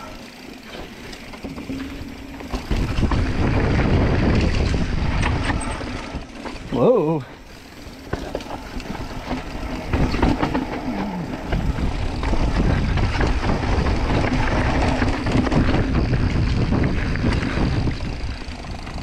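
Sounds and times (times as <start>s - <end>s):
mountain bike rattling: 0.0s - 19.0s
tyres on loose dirt: 0.0s - 19.0s
wind rushing over microphone: 2.5s - 6.8s, 8.8s - 19.0s
knocks over bumps: 9.8s - 14.0s.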